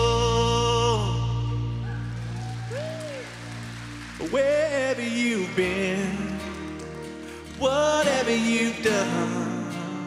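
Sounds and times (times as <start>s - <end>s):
man singing: 0.0s - 2.1s, 4.2s - 10.0s
acoustic guitar: 0.0s - 10.0s.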